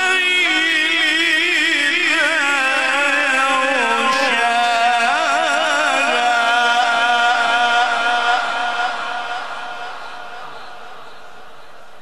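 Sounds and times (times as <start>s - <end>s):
man reciting melodically: 0.0s - 11.4s.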